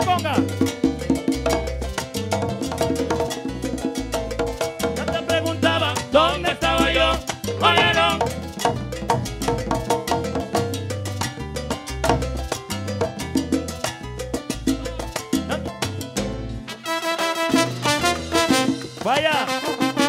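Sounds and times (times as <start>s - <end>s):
vibrato melody line: 0.0s - 12.1s, 16.6s - 18.9s
salsa band playing: 0.0s - 20.0s.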